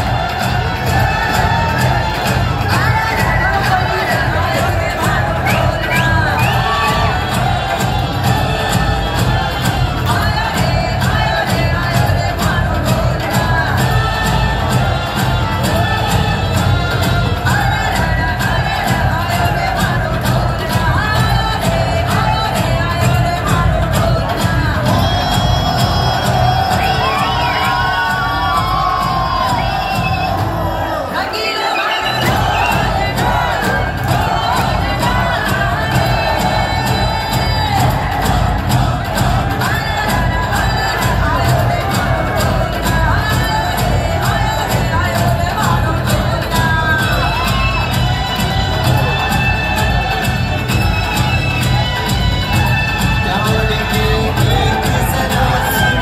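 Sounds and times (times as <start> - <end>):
audience cheering and shouting: 0.0 - 56.0
dance song over loudspeakers: 0.0 - 56.0
loud music over speakers: 0.0 - 56.0.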